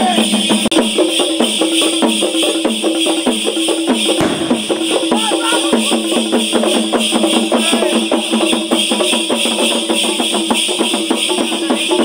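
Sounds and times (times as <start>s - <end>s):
drums beating fast rhythm: 0.0s - 12.0s
ankle bells jingling: 0.3s - 12.0s.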